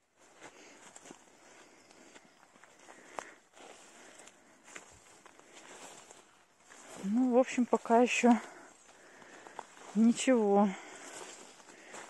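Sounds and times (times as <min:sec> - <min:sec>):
footsteps through tall grass: 0:00.0 - 0:12.0.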